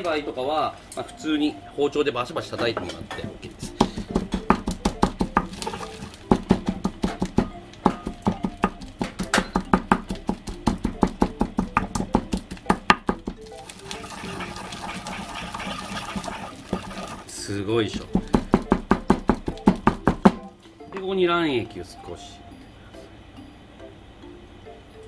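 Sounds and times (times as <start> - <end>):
pestle pounding in a bowl: 2.6 - 17.2, 17.9 - 20.5
pestle grinding in a bowl: 3.2 - 17.3, 18.0 - 20.4.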